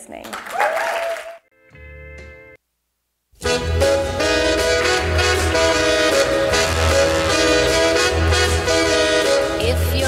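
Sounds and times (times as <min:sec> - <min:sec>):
deep bass: 0:03.4 - 0:10.0
upbeat instrumental music: 0:03.4 - 0:10.0.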